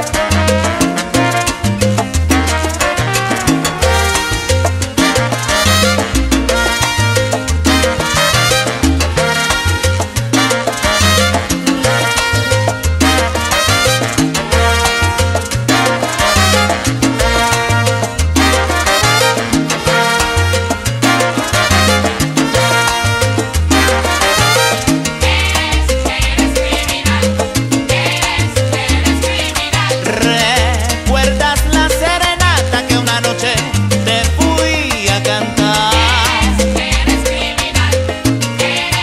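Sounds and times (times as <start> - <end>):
instrumental salsa music: 0.0 - 39.0.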